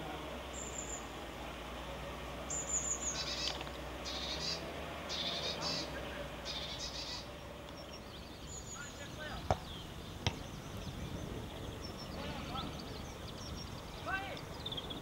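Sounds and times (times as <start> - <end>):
outdoor background hum: 0.0 - 15.0
small bird chirping: 0.4 - 1.2, 2.4 - 15.0.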